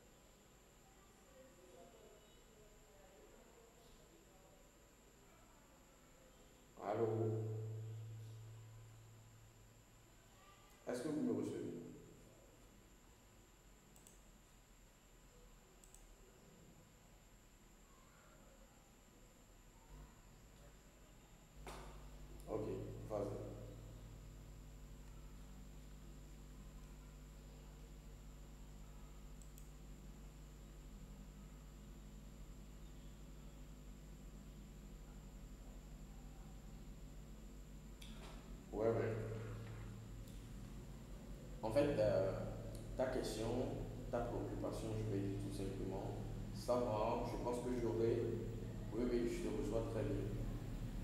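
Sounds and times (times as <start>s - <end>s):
faint electrical hum: 0.0s - 51.0s
faint room hiss: 0.0s - 51.0s
faint click: 13.9s - 14.3s, 15.8s - 16.2s, 29.2s - 30.0s, 38.0s - 38.5s, 39.6s - 40.6s.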